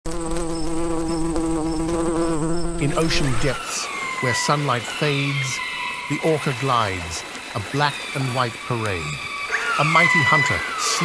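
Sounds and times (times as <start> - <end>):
bee buzzing: 0.1 - 11.0.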